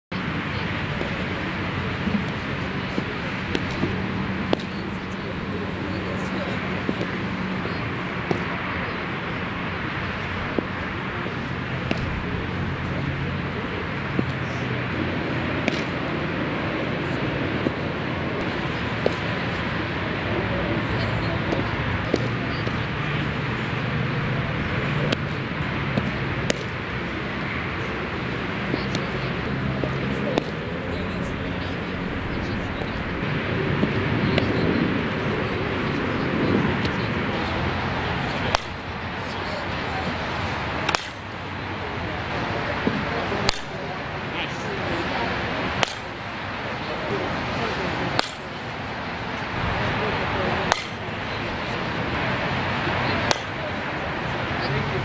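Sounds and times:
background chatter of voices: 0.1 - 55.0
ball smacking into mitt: 40.9 - 41.2, 42.9 - 43.7, 45.8 - 46.0, 48.2 - 48.4, 50.7 - 51.0, 53.3 - 53.5.

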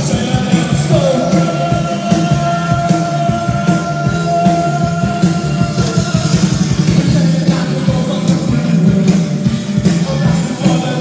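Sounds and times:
drums keeping steady beat: 0.0 - 11.0
live rock band playing: 0.0 - 11.0.

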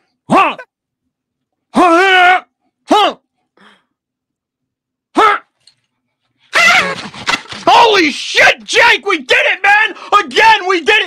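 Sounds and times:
man shouting: 0.3 - 0.7, 1.7 - 3.2, 5.1 - 5.5, 6.5 - 7.0, 7.6 - 11.0
man yelling excitedly: 0.3 - 0.7, 1.7 - 3.2, 5.1 - 5.5, 6.5 - 11.0.

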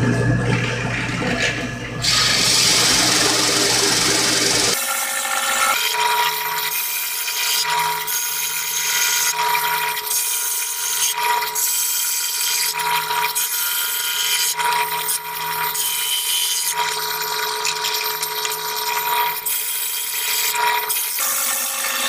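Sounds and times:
drill press motor whine: 0.0 - 6.8
drill bit rasping into wood: 2.0 - 4.8.

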